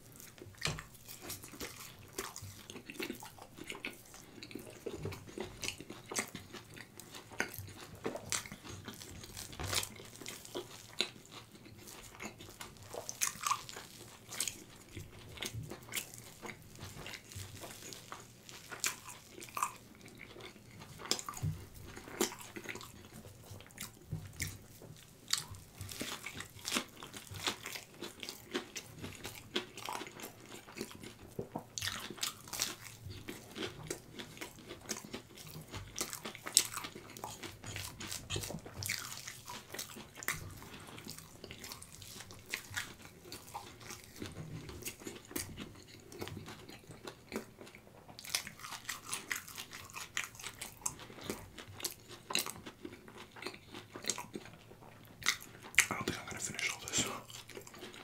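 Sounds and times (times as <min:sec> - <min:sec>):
crunchy chewing: 0:00.0 - 0:58.0
wet mouth clicks: 0:55.3 - 0:57.8.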